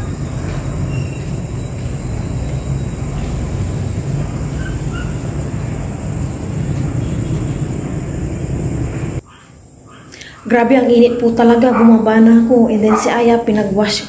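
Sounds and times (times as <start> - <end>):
low rumbling: 0.0 - 9.2.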